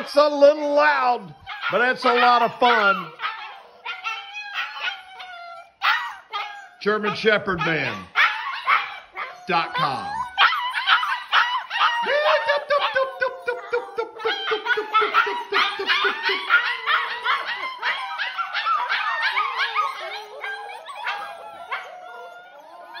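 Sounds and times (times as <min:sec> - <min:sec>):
puppies yipping and barking: 0:00.0 - 0:23.0.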